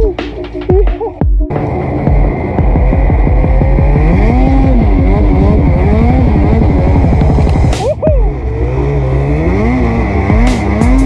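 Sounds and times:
snowmobile engine running hard: 1.5s - 11.0s.

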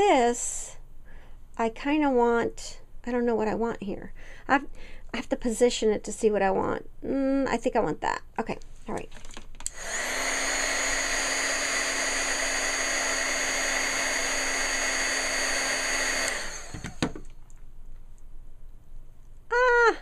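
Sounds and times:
heat gun fan humming: 9.6s - 17.4s.

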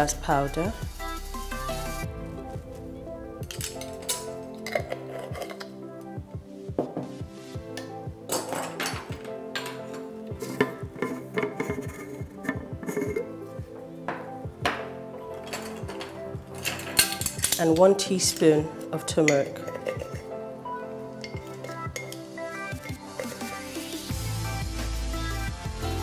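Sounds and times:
background music: 0.0s - 26.0s
metal spoon clinking on glass: 15.4s - 18.5s, 21.2s - 22.2s.

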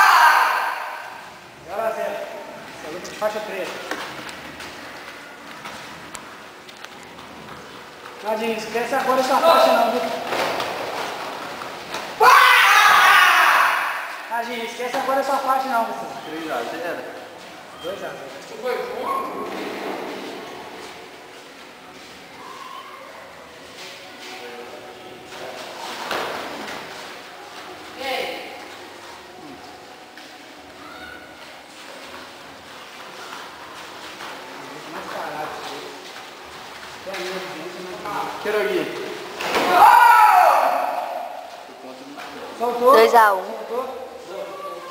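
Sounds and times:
loud shout: 0.0s - 1.2s, 12.2s - 14.3s, 39.6s - 41.5s
voices talking in echoing hall: 0.0s - 44.9s.

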